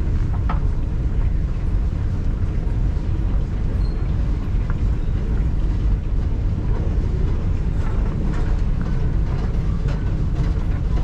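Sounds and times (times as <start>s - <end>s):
low rumble of station passage: 0.0s - 11.0s.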